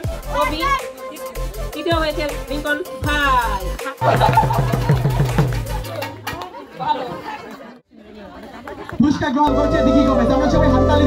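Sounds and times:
background music with held notes: 0:00.0 - 0:06.2, 0:09.5 - 0:11.0
people chattering: 0:05.6 - 0:11.0.

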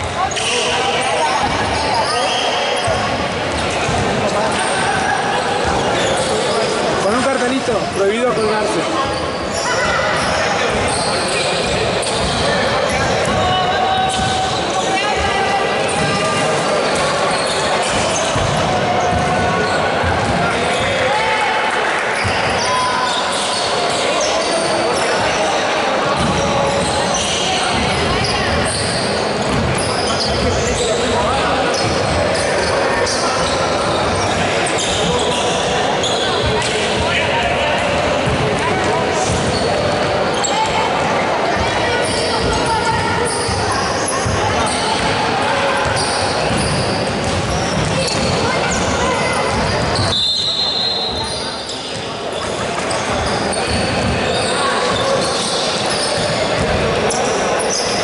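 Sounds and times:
many people talking echoing: 0:00.0 - 0:58.0
basketball bouncing on wooden court: 0:20.0 - 0:20.9, 0:27.7 - 0:30.4, 0:45.8 - 0:50.1, 0:56.1 - 0:56.8.

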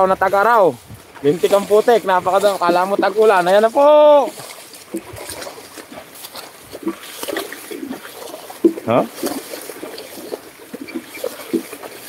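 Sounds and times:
squelching and splashing in mud: 0:00.0 - 0:12.0.

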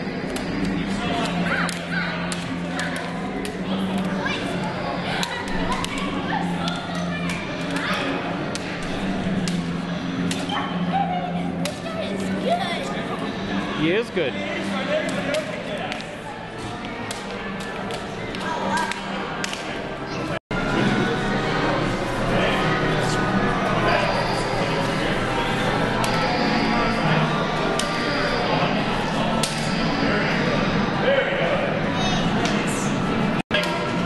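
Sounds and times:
people chattering: 0:00.0 - 0:34.0
toy lightsabers clacking: 0:01.2 - 0:03.6.

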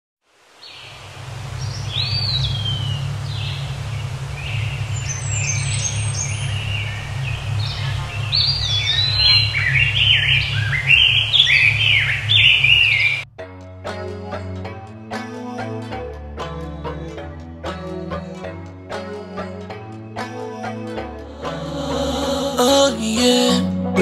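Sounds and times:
steady low rumble: 0:00.9 - 0:13.3
songbirds chirping and singing: 0:01.6 - 0:13.2.

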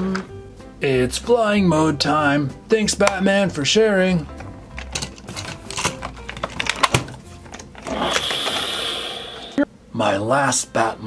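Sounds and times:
toy mechanism whirring and ratcheting: 0:04.8 - 0:09.0.

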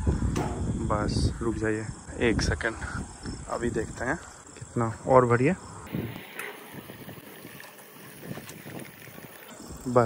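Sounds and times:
fuel pouring into tank: 0:05.9 - 0:10.0.

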